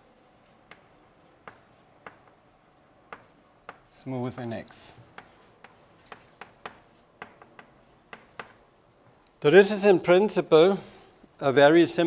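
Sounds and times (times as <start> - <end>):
chalk clicking on blackboard: 0.6 - 2.4, 3.1 - 3.9, 5.0 - 8.6.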